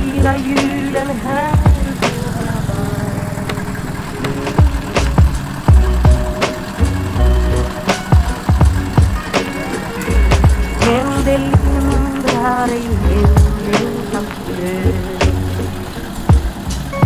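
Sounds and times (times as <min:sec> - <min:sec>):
background music with drum beat: 0:00.0 - 0:02.4, 0:04.2 - 0:17.0
deep sliding bass notes: 0:00.0 - 0:17.0.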